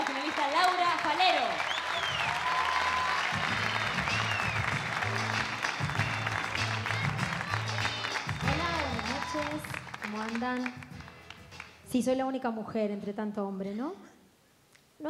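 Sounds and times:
audience applauding: 0:00.0 - 0:11.8
music with pulsing bass line: 0:03.3 - 0:11.9.

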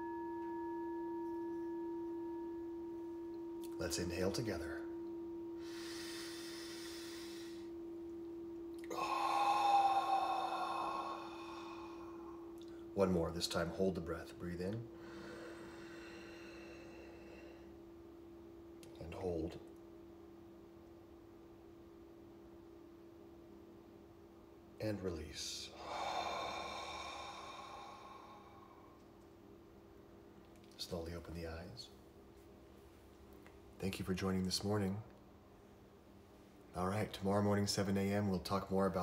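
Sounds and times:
steady low hum: 0:00.0 - 0:39.0
man exhaling through mouth: 0:05.6 - 0:07.6, 0:08.8 - 0:12.5, 0:25.7 - 0:28.9.

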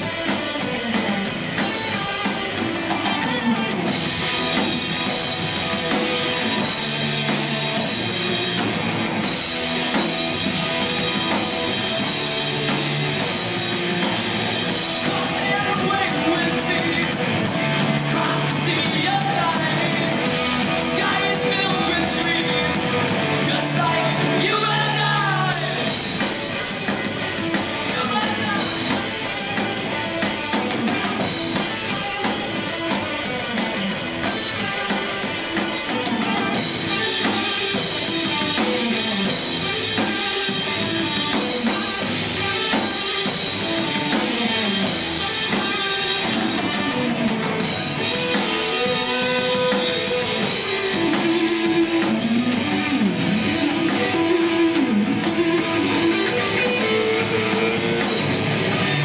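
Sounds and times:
drum kit: 0:00.0 - 0:59.0
electric guitars: 0:00.0 - 0:59.0
metal band playing: 0:00.0 - 0:59.0.

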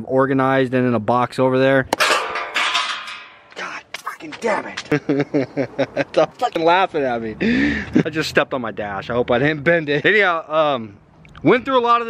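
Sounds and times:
metallic rattle: 0:02.0 - 0:03.6.

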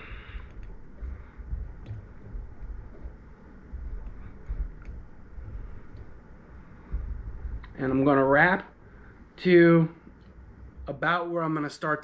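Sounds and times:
soft low handling bumps: 0:00.0 - 0:09.2.

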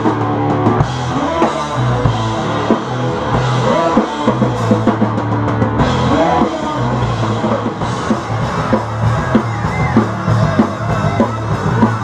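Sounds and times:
electric bass line: 0:00.0 - 0:12.0
electric guitar riff: 0:00.0 - 0:12.0.

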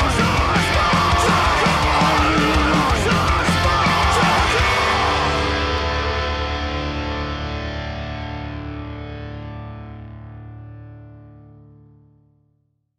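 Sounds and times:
distorted electric guitar chord ringing: 0:00.0 - 0:11.6.

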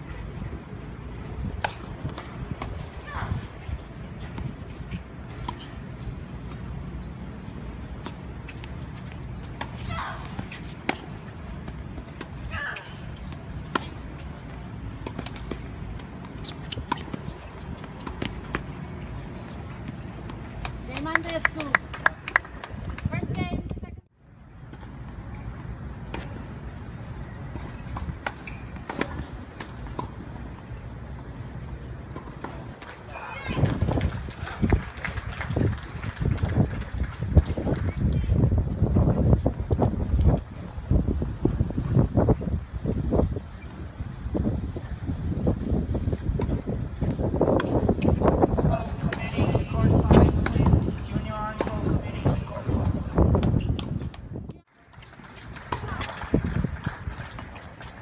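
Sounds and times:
tennis balls bouncing on hard court: 0:01.2 - 0:07.3, 0:07.9 - 0:23.8, 0:27.5 - 0:30.8, 0:45.9 - 0:54.6
tennis balls struck with rackets: 0:01.4 - 0:03.4, 0:09.5 - 0:18.9, 0:27.5 - 0:30.8, 0:46.3 - 0:54.6
wind buffeting microphone: 0:33.4 - 0:54.6, 0:55.5 - 0:58.0.

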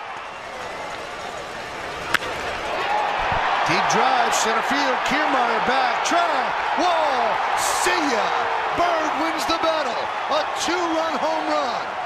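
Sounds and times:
stadium crowd noise: 0:00.0 - 0:12.0
baseball bat cracking ball: 0:01.8 - 0:02.6.

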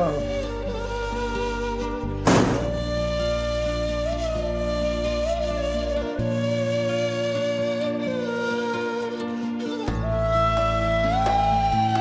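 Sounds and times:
heavy percussive hit: 0:02.2 - 0:02.9.

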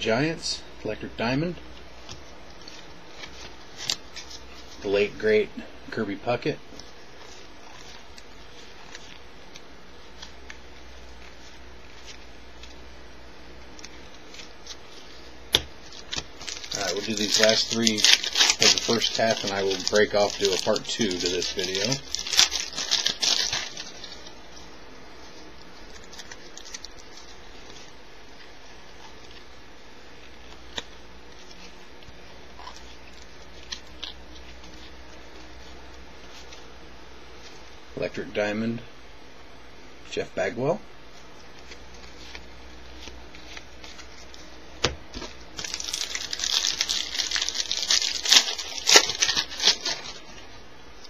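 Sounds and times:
wrapper crinkling: 0:02.0 - 0:05.2, 0:06.7 - 0:12.9, 0:13.6 - 0:29.5, 0:41.3 - 0:51.0.

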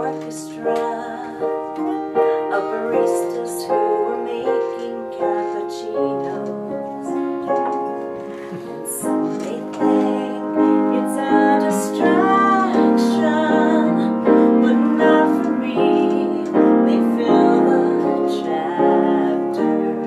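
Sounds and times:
woman singing a slow ballad: 0:00.0 - 0:08.0, 0:08.7 - 0:20.0
acoustic guitar: 0:00.0 - 0:20.0
piano chords: 0:00.0 - 0:20.0.

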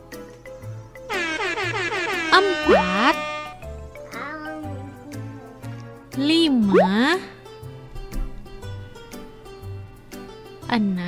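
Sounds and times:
soft children's music: 0:00.0 - 0:11.0
horn effect sliding downward: 0:01.1 - 0:03.7.

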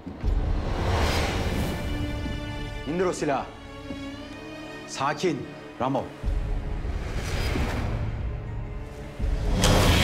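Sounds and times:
tense dramatic music: 0:00.0 - 0:10.0.

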